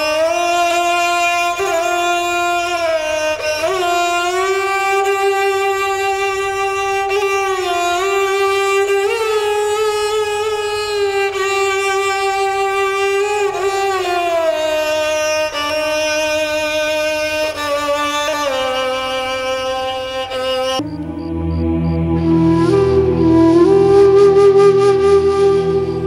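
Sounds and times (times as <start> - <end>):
solo violin slow melody: 0.0 - 26.0.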